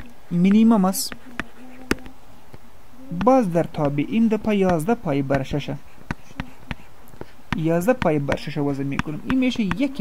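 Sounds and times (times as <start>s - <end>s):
faint low hum: 0.0s - 10.0s
stylus tapping on drawing tablet: 0.4s - 2.6s, 3.2s - 10.0s.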